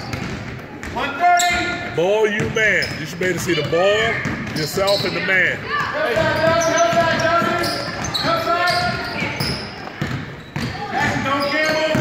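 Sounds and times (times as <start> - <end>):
basketball bouncing on hardwood floor: 0.0 - 1.0, 3.4 - 12.0
voices of players and spectators: 0.0 - 12.0.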